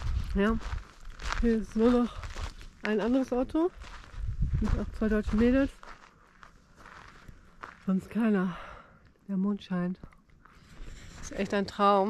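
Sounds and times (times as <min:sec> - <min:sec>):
faint footsteps on sand: 0:00.0 - 0:08.4, 0:10.4 - 0:12.0.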